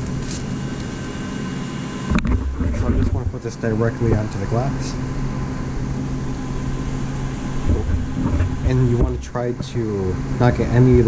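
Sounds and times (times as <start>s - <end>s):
mechanical hum of equipment: 0.0s - 11.0s.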